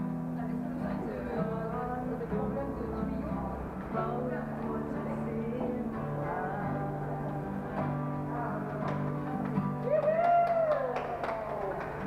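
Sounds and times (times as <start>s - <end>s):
acoustic guitar chord: 0.0s - 10.0s.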